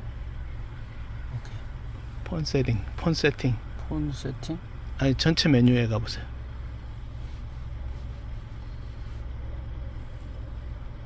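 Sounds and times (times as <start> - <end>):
low hum inside car cabin: 0.0 - 11.0.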